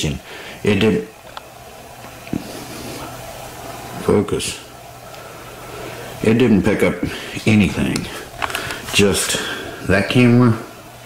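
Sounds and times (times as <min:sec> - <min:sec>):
room tone hum with hiss: 0:00.0 - 0:11.0.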